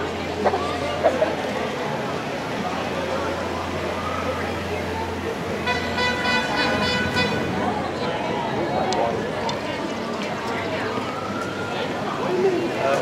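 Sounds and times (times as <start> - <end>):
crowd chatter: 0.0 - 13.0
vehicle horn short beeps: 5.6 - 7.6.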